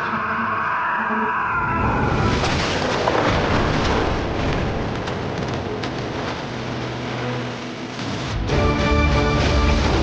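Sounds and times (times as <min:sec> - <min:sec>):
splintering debris falling: 0:02.3 - 0:07.3
wooden boards smashing: 0:02.4 - 0:06.8.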